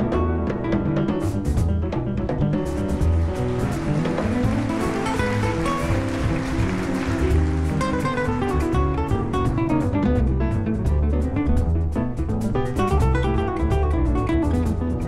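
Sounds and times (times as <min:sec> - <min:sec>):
double bass: 0:00.0 - 0:15.0
drums: 0:00.0 - 0:15.0
strummed guitar: 0:00.0 - 0:15.0.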